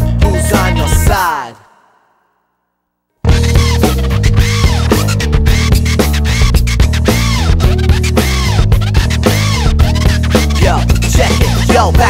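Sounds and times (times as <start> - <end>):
rap-rock song sliding down in pitch: 0.0 - 1.6, 3.2 - 12.0.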